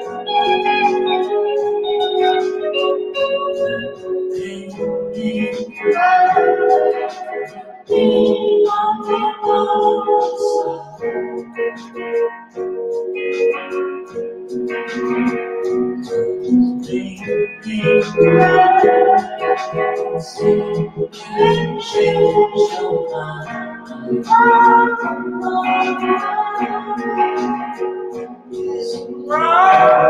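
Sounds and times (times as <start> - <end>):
person singing: 0.0 - 12.4, 13.3 - 30.0
electric guitars: 0.0 - 30.0
keyboard: 0.0 - 30.0.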